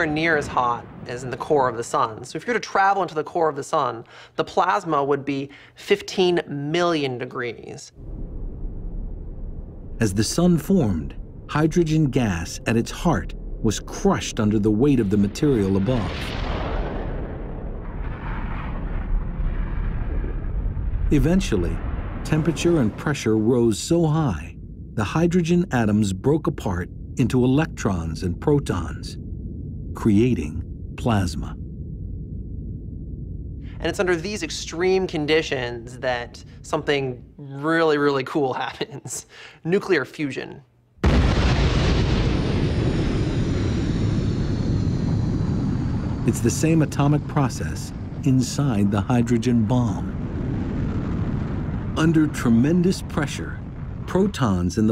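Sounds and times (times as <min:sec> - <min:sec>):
deep steady rumble: 0:08.0 - 0:37.5, 0:41.0 - 0:54.9.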